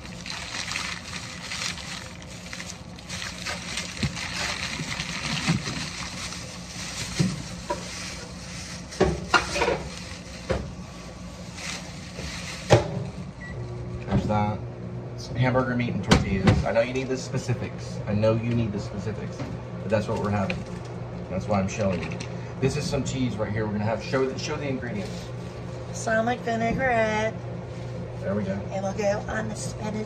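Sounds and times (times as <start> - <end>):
microwave oven humming: 0.0 - 30.0.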